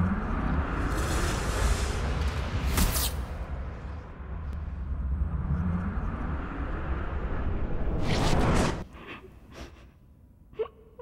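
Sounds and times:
steady low rumble: 3.3s - 8.9s.

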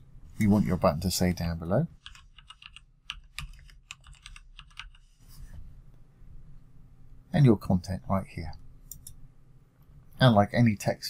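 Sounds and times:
typing on computer keyboard: 2.0s - 5.1s.

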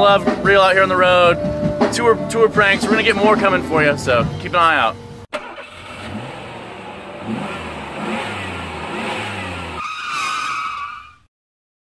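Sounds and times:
vehicle engine rumbling: 0.0s - 10.5s.

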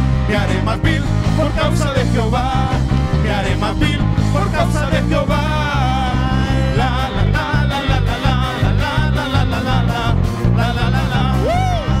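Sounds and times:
drum kit and bass beat: 0.0s - 12.0s
person singing long notes: 4.4s - 12.0s.

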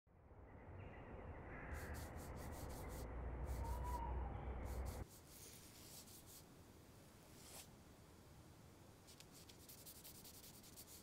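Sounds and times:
drawing tool scratching on paper: 1.8s - 3.8s, 4.6s - 6.4s, 9.1s - 11.0s.

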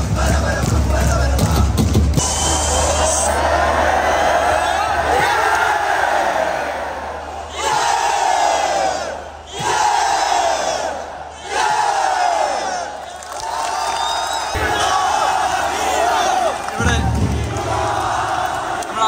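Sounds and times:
stadium crowd chanting: 0.0s - 19.0s
crowd shouting: 2.2s - 19.0s
deep thud: 16.8s - 18.4s.

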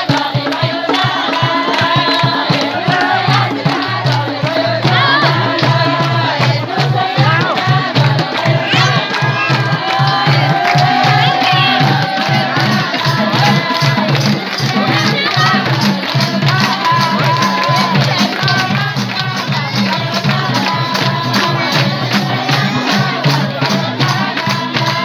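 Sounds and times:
folk song singing: 0.0s - 25.0s
steady drum beat: 0.0s - 25.0s
crowd voices: 1.0s - 25.0s.

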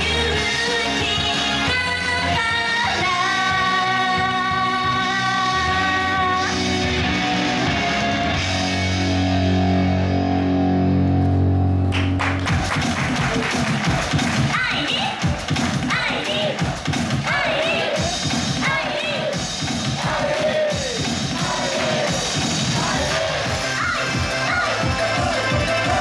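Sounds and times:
woman singing into a microphone: 0.0s - 6.6s.

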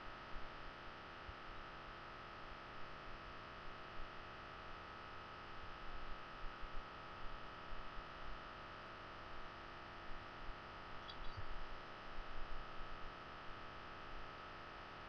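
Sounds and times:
thin electronic whine: 0.9s - 15.0s.

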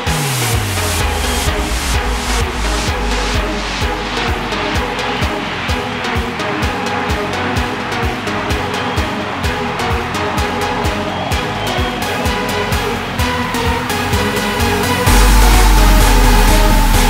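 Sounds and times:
kick drum: 15.0s - 17.0s.

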